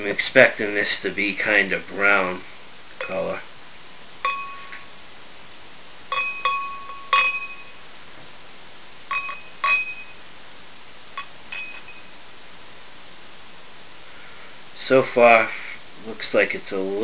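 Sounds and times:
bottle clinking against glass: 4.2s - 4.8s, 6.1s - 7.8s, 9.1s - 10.2s, 11.2s - 12.1s.

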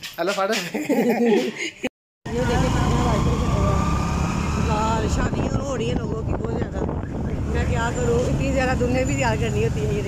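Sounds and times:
motorcycle engine: 2.3s - 6.0s
road rumble: 2.3s - 10.0s.

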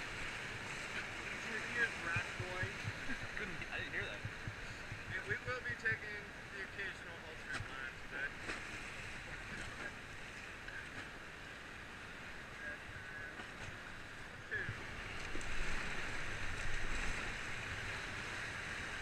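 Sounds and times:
river rapids rushing: 0.0s - 4.9s
wind on microphone: 0.0s - 5.7s
faint voices: 1.0s - 8.4s, 12.5s - 14.9s.

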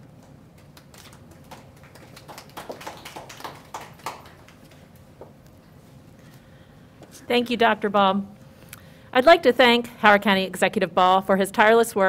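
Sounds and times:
light applause: 0.6s - 5.0s.

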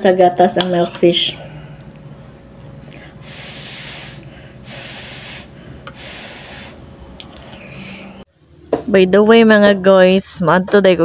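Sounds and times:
breath blowing hiss: 3.1s - 6.9s.

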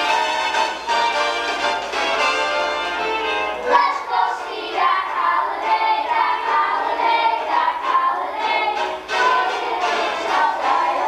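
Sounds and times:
children's choir singing: 3.2s - 11.0s.

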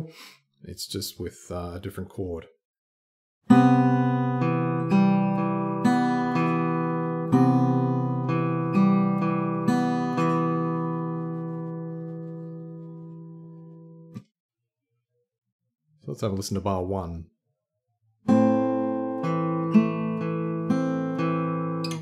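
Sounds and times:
fingerstyle acoustic guitar: 3.5s - 14.2s, 18.3s - 22.0s.

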